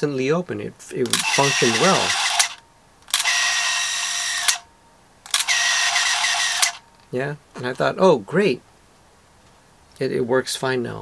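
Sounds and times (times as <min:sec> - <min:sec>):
camera shutter click: 0:01.0 - 0:04.7, 0:05.3 - 0:06.8
camera motor winding film: 0:01.1 - 0:04.7, 0:05.3 - 0:06.8.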